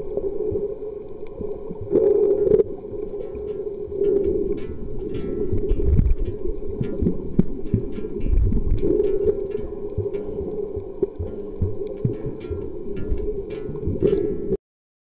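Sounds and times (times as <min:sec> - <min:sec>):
faint crackles: 0:00.0 - 0:14.6
underwater rumble of moving water: 0:00.0 - 0:14.6.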